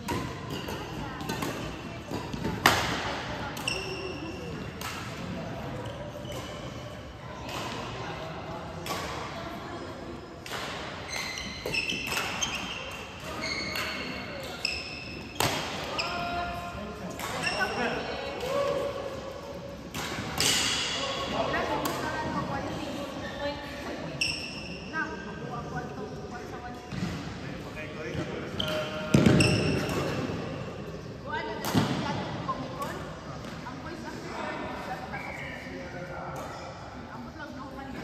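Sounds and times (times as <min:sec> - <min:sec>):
shoes squeaking on court: 0:03.5 - 0:04.7, 0:05.7 - 0:07.5, 0:11.0 - 0:16.4, 0:28.1 - 0:30.1.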